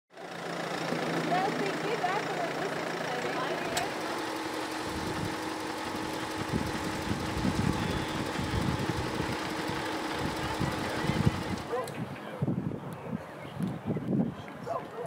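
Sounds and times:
car engines running: 0.1s - 12.7s.

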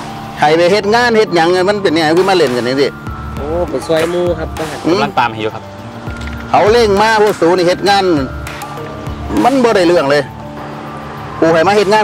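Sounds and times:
background music with bass: 0.0s - 12.0s
man speaking: 0.4s - 5.7s, 6.5s - 8.3s.

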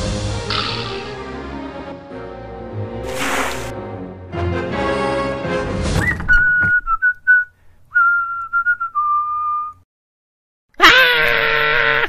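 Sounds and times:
man whistling a tune: 6.0s - 9.8s
loud cry of alarm: 10.8s - 12.0s.

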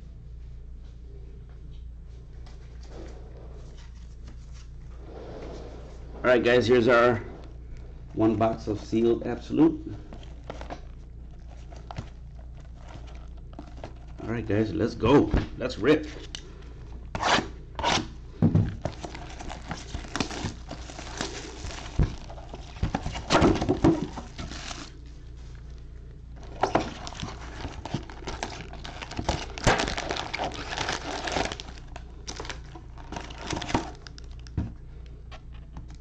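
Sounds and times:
card packs rustling: 6.6s - 34.6s
plastic wrap crinkling and tearing: 10.1s - 14.3s, 18.8s - 25.7s, 26.4s - 34.6s
cardboard box opening: 18.8s - 25.0s, 26.4s - 34.1s.

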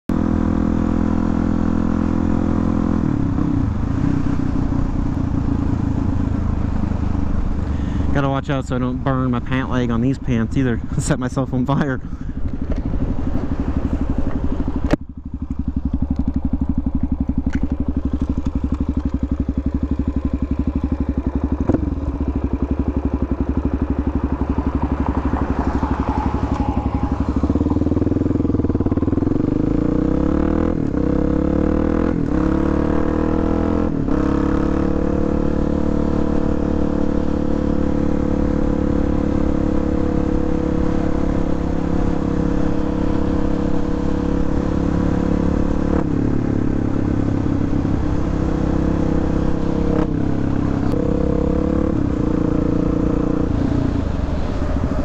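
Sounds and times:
motorcycle engine accelerating: 0.1s - 55.0s.

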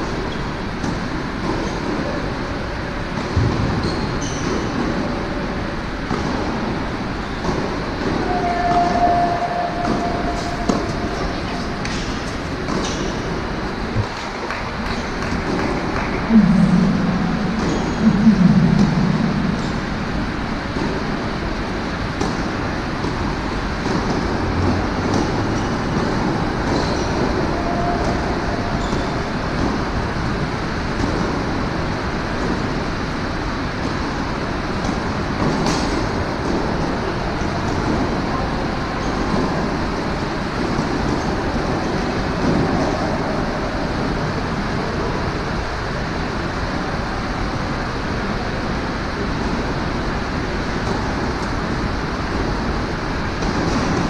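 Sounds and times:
steady rushing hall noise: 0.0s - 54.0s.

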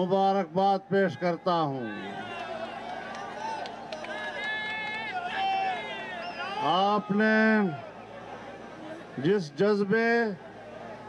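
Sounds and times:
crowd of many voices: 0.0s - 11.0s.

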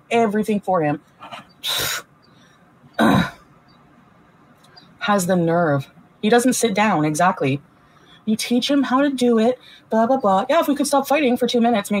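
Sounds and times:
woman clearing her throat: 3.0s - 3.4s.

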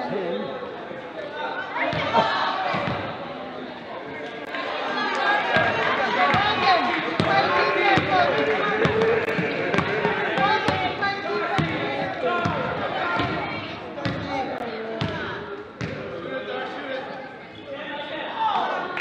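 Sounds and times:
voices echoing in gym: 0.0s - 19.0s.

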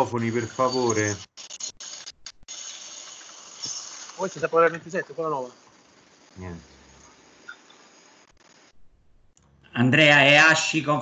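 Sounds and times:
microphone background hiss: 4.1s - 11.0s.

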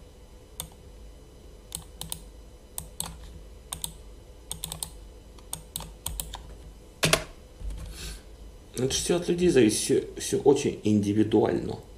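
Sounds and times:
keyboard typing: 1.7s - 6.5s.

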